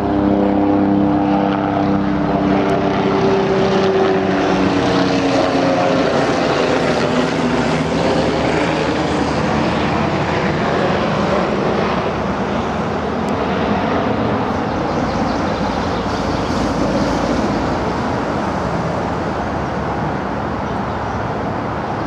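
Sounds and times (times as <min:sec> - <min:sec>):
loud engine drone: 0:00.0 - 0:22.0.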